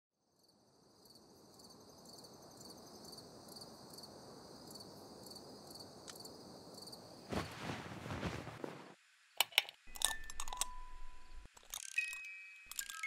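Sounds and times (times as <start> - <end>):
crickets chirping: 0.2 - 13.0.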